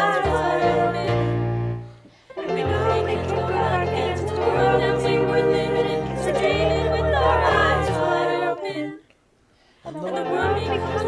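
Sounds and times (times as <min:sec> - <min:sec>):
group of young voices singing: 0:00.0 - 0:09.1, 0:09.8 - 0:11.0.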